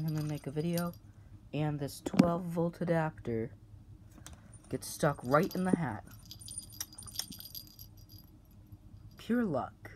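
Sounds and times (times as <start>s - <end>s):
small clicks and jingly rattle: 0.0s - 1.1s, 4.5s - 9.3s.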